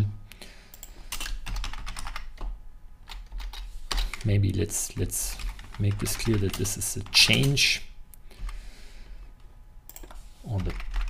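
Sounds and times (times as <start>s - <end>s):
typing on computer keyboard: 0.7s - 4.2s, 5.4s - 7.6s, 9.9s - 11.0s.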